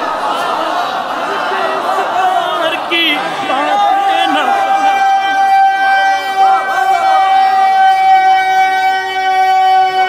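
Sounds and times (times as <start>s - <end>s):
men shouting: 0.0s - 10.0s
microphone feedback howl: 4.8s - 10.0s.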